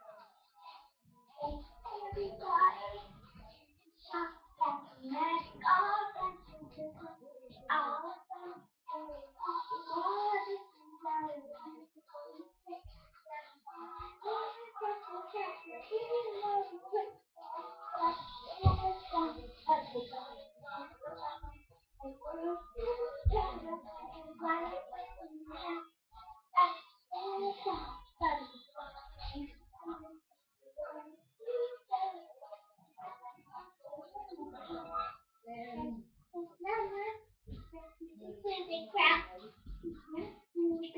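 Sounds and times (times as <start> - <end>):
girl singing: 0.0 - 30.2, 30.8 - 39.4.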